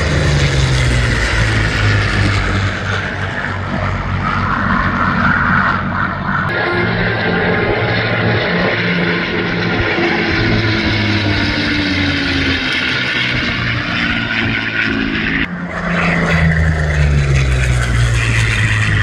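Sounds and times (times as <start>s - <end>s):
propeller plane engine passing: 0.0s - 19.0s
propeller planes droning past: 0.0s - 19.0s.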